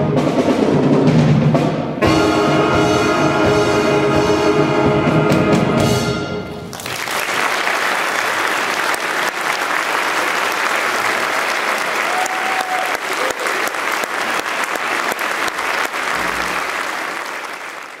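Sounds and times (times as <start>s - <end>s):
audience applauding: 6.7s - 18.0s.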